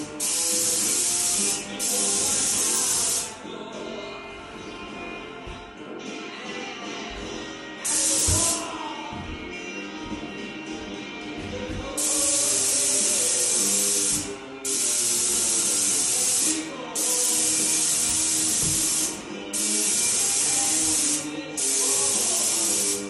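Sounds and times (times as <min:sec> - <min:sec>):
paint spray gun hissing: 0:00.0 - 0:03.4, 0:07.8 - 0:08.6, 0:12.0 - 0:23.0
music: 0:00.0 - 0:23.0.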